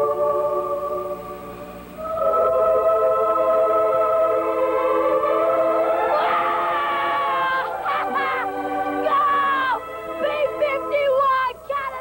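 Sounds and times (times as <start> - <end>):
sustained instrumental chords: 0.0 - 12.0
boy singing high note: 6.1 - 12.0.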